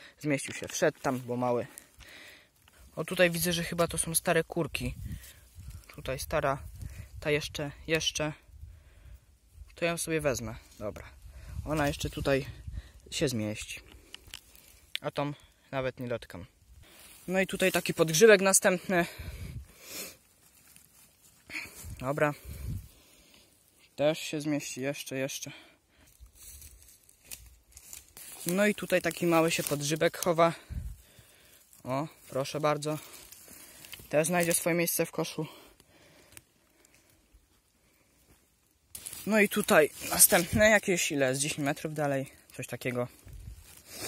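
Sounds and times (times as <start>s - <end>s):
rustling of moss and dry grass: 0.0s - 44.0s.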